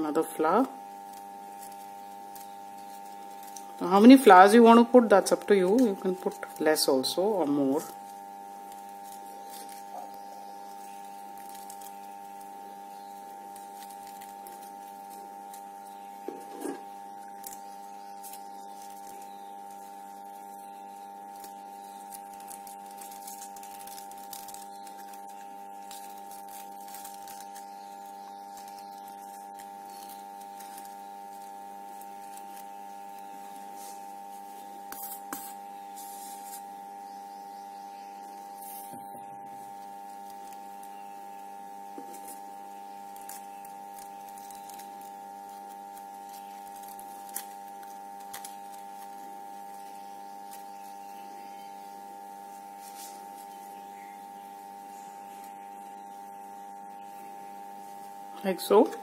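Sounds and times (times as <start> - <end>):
paper and wire rustling: 0.0 - 37.2, 38.2 - 58.2
hum of held tones: 0.0 - 59.0.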